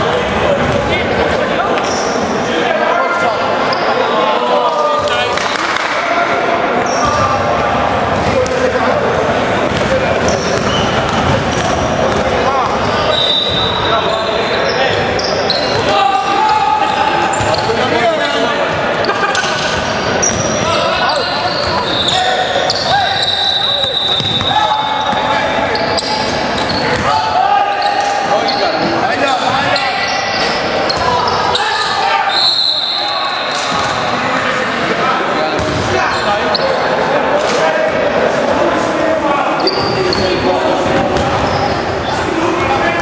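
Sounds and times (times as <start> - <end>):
sneakers squeaking on hardwood: 6.8 - 7.4, 9.7 - 15.9, 16.5 - 18.4, 19.3 - 32.8, 39.6 - 42.8
basketball bouncing: 9.7 - 12.9, 24.2 - 24.5, 35.6 - 35.9, 40.9 - 41.5.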